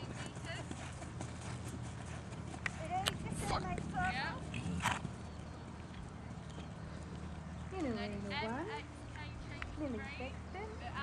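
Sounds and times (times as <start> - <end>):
hoofbeats on sand: 0.0 - 5.3.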